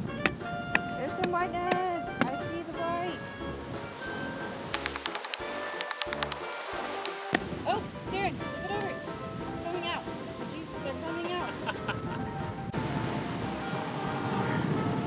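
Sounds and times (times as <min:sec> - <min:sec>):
background music: 0:00.0 - 0:15.0.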